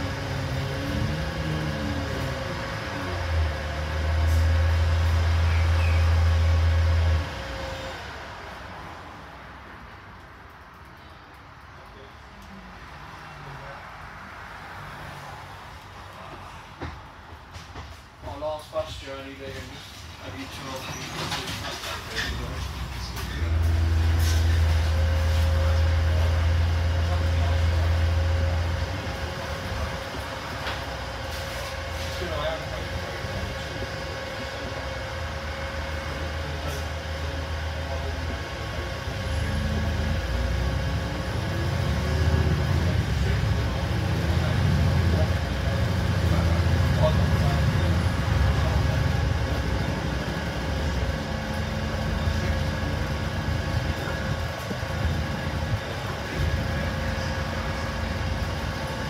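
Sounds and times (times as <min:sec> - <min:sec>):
bus engine drone: 0:00.0 - 0:59.0.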